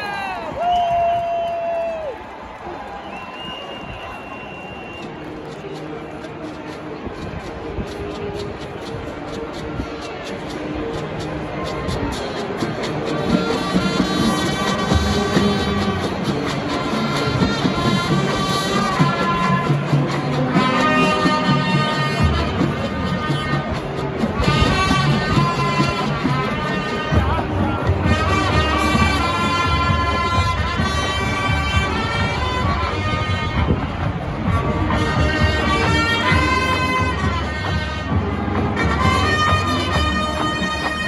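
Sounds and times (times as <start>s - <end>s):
marching percussion: 3.3s - 41.0s
brass and woodwinds playing: 7.9s - 41.0s.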